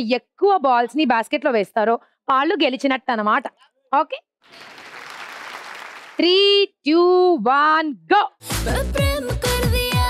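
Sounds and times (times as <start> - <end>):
crowd applauding: 4.5 - 6.2.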